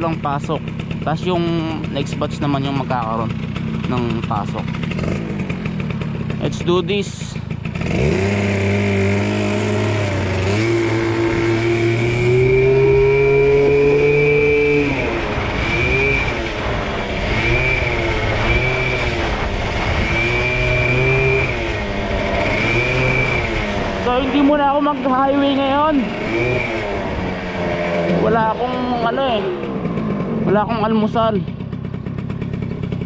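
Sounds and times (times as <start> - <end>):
motorized bicycle engine revving: 0.0 - 33.0.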